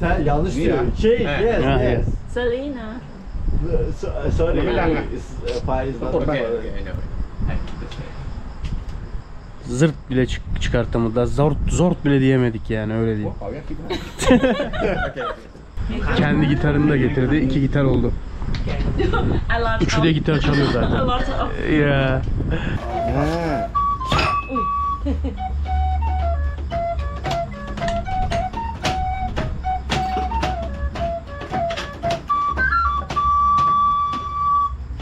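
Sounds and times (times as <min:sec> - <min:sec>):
voices: 0:00.0 - 0:08.2, 0:22.9 - 0:24.8
laughter: 0:13.8 - 0:15.6, 0:18.9 - 0:19.5, 0:20.3 - 0:21.6, 0:25.0 - 0:25.4
breathy air through clarinet: 0:22.6 - 0:25.0
flute-like wind instrument: 0:22.8 - 0:34.9.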